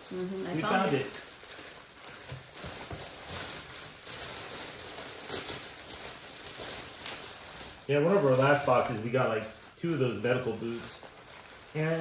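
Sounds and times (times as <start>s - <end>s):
plastic bag rustling and crinkling: 0.0s - 12.0s.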